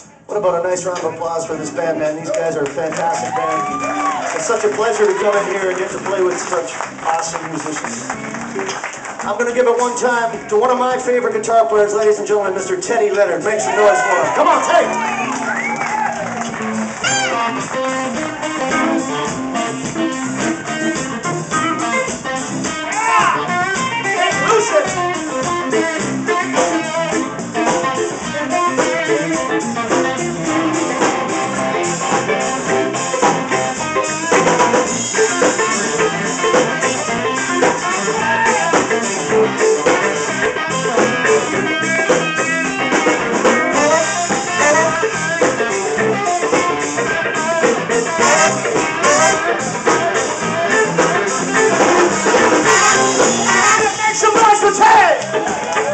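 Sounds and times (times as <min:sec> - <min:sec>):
blues band playing: 0:00.0 - 0:55.9
electric guitar solo: 0:03.1 - 0:09.1, 0:13.4 - 0:55.9.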